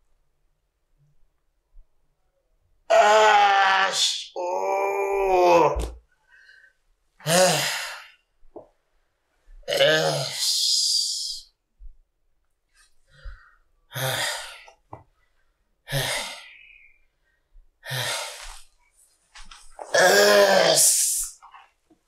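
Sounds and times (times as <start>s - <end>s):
man groaning in pain: 2.9s - 6.0s, 7.2s - 8.1s, 9.7s - 11.3s, 13.9s - 14.6s, 19.8s - 21.2s.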